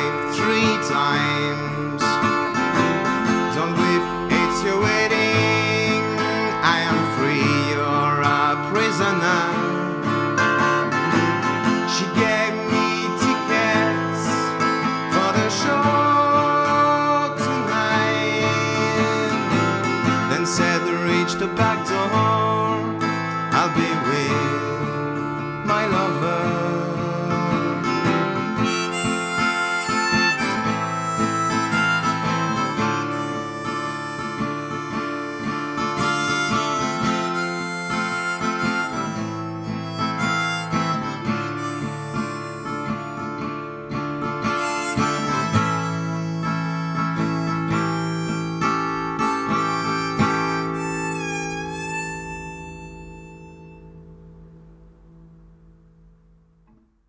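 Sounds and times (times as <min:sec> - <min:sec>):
harmonica: 0:00.0 - 0:54.4
strummed acoustic guitar: 0:00.0 - 0:56.9.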